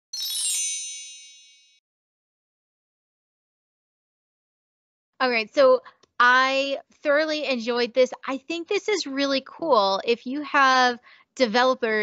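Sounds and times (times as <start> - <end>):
bright high bell-like chime: 0.0 - 1.8.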